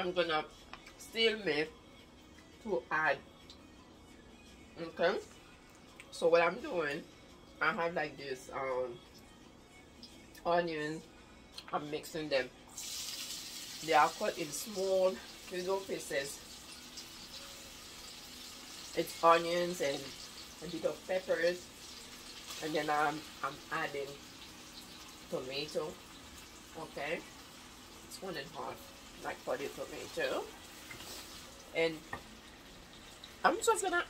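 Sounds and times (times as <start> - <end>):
vegetables sizzling in a frying pan: 12.7 - 34.0.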